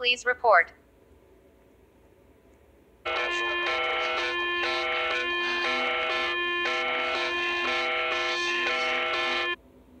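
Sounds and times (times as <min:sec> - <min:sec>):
emergency alert alarm tones: 0:03.1 - 0:09.6.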